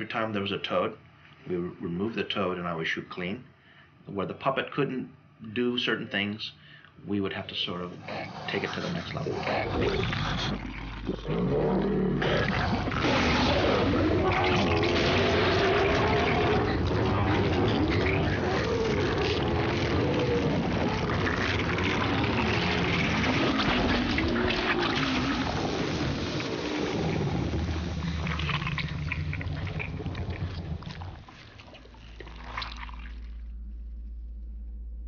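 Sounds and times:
creature groaning: 7.9s - 31.2s
wet liquid noise: 8.5s - 33.6s.

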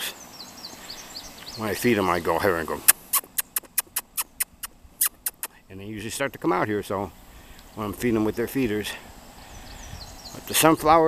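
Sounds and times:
man making squeaky mouth clicks: 2.8s - 5.6s.

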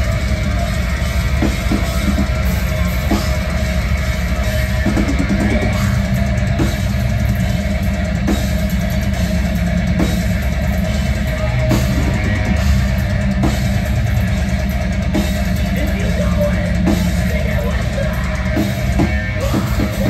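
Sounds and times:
metal band playing live: 0.0s - 20.0s.

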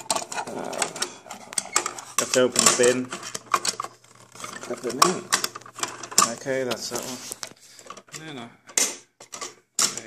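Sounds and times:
plastic toy clicks and rattles: 0.0s - 10.0s.

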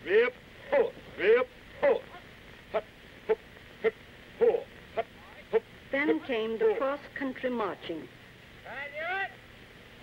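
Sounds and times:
man shouting marching cadence: 0.0s - 2.2s.

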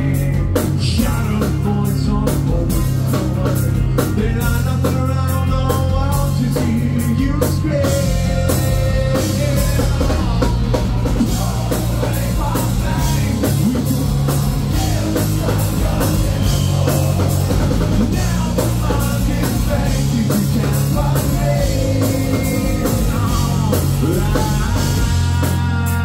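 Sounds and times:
bass guitar: 0.0s - 26.0s
drum kit beat: 0.0s - 26.0s
electric guitars: 0.0s - 26.0s
man singing: 0.0s - 26.0s.

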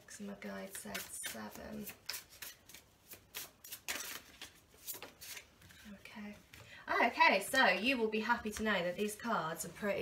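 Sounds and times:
cards being shuffled: 0.7s - 5.9s.

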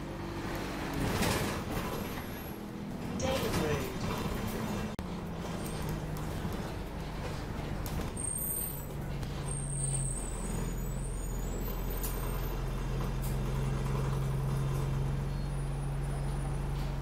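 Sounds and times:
bus engine running: 0.0s - 17.0s.

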